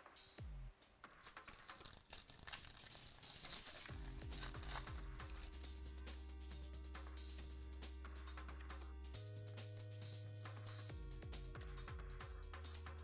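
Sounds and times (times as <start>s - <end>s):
foil pack tearing and crinkling: 1.2s - 5.6s
electronic background music: 1.5s - 13.0s
deep bass notes: 3.9s - 9.6s.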